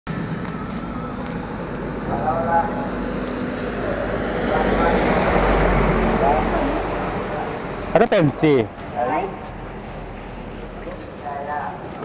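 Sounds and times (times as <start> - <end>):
vehicle engine passing: 0.1 - 12.0.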